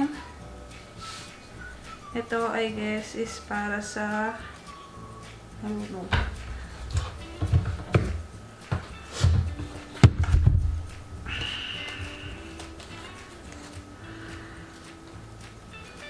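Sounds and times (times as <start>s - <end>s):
background music with held notes: 0.0s - 16.0s
cables and packaging knocking: 6.1s - 11.0s.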